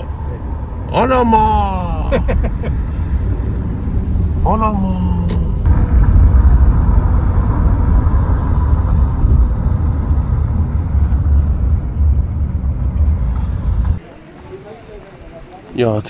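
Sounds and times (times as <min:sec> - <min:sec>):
road and engine rumble inside car: 0:00.0 - 0:14.0.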